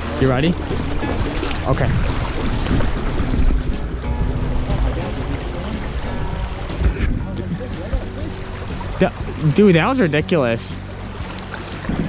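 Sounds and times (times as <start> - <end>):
stream rushing over riffles: 0.0 - 12.0
wind buffeting microphone: 0.0 - 12.0.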